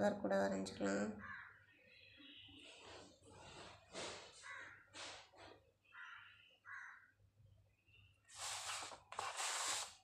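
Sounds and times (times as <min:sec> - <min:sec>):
faint crows cawing: 0:01.2 - 0:02.6, 0:04.2 - 0:07.3.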